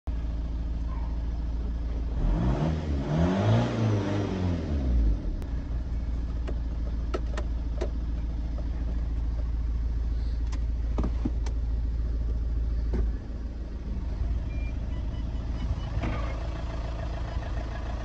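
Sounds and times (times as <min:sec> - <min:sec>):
diesel engine idling and revving: 0:00.1 - 0:18.0.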